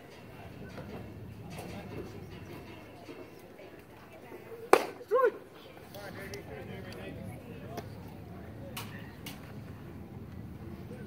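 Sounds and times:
faint background chatter: 0.0s - 11.0s
baseball bat striking ball: 4.7s - 5.0s.

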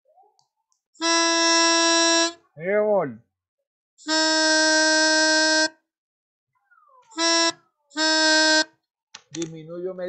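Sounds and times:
melodica notes: 1.0s - 2.4s, 4.0s - 5.8s, 7.1s - 8.8s.

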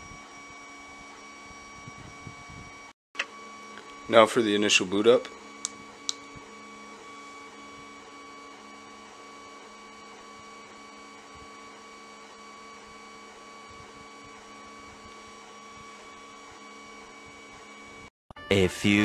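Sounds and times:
electrical hum and whine: 0.0s - 19.0s.

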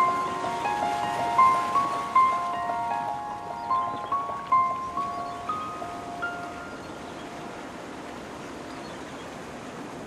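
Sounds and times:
chime-like music notes: 0.0s - 7.0s.

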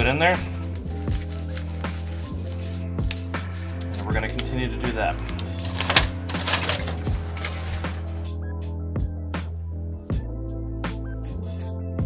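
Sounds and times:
background music: 0.0s - 12.0s
hands rustling potting mix: 0.4s - 8.3s.

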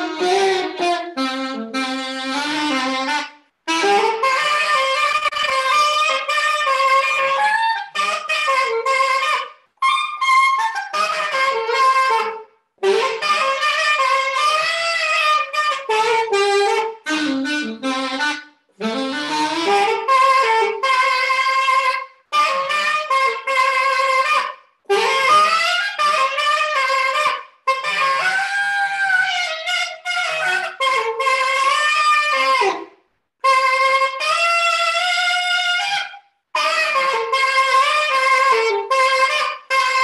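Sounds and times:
alto saxophone melody: 0.0s - 40.0s.

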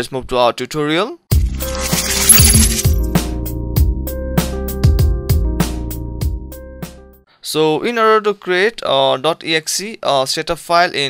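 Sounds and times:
electronic music with drum beat: 1.3s - 1.7s
bright tinkling sparkle: 1.4s - 3.1s.

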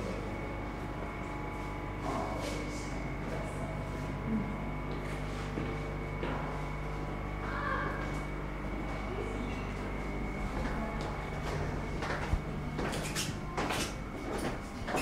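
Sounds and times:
machinery hum: 0.0s - 15.0s
footsteps knocks and rustles: 10.4s - 15.0s.

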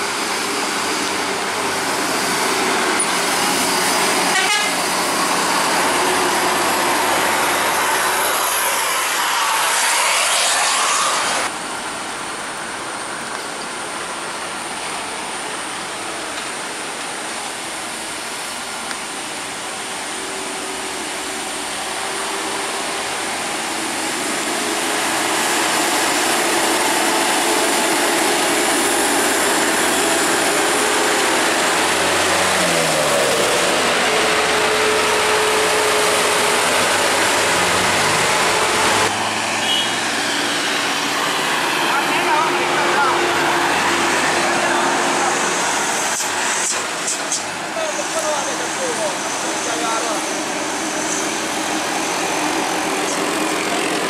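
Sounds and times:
heavy vehicle engines labouring: 0.0s - 54.0s
tyre and road noise: 0.0s - 54.0s.

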